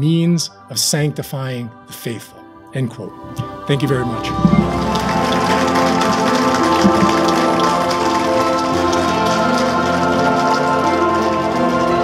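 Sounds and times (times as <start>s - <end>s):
music of long held notes: 2.9s - 12.0s
audience applauding: 3.3s - 12.0s.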